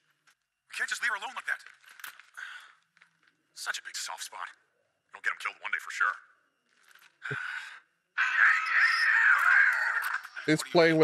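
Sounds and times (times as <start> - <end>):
harsh screeching cry: 8.2 - 10.5.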